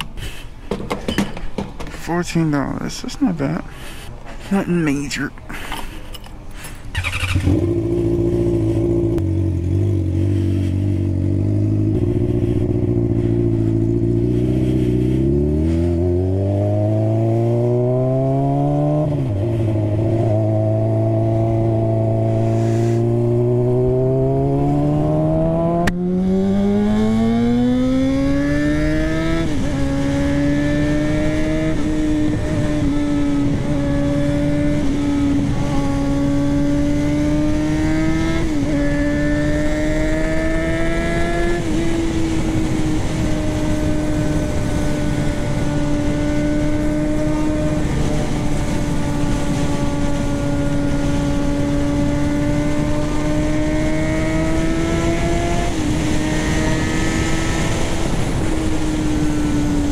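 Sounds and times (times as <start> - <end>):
motorcycle engine accelerating: 6.9 - 59.9.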